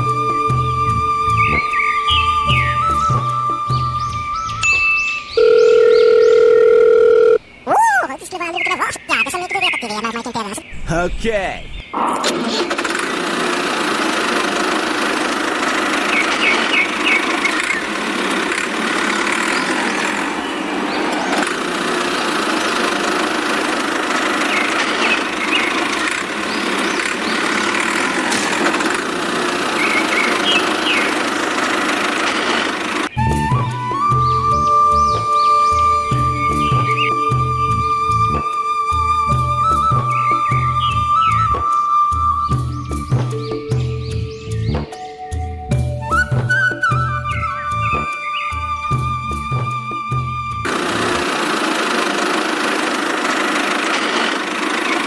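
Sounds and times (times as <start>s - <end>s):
music: 0.0s - 5.4s, 33.1s - 50.7s
steady telephone tone: 4.6s - 7.4s
tractor engine idling: 12.3s - 20.4s, 21.2s - 34.2s, 50.5s - 55.0s.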